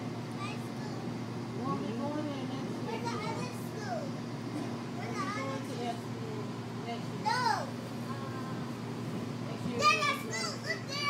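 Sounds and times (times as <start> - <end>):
light rail car humming: 0.0 - 11.0.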